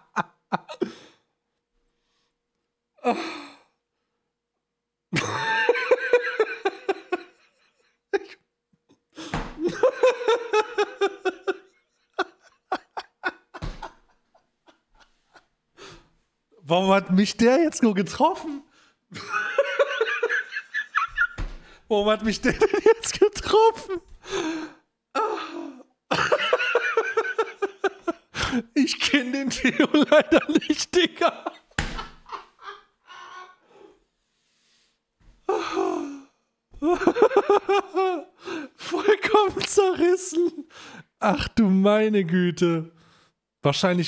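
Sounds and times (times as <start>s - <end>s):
man laughing: 0.0s - 1.1s, 5.1s - 8.4s, 9.6s - 15.5s, 19.1s - 24.4s, 25.2s - 33.5s, 35.5s - 36.2s, 36.8s - 40.6s.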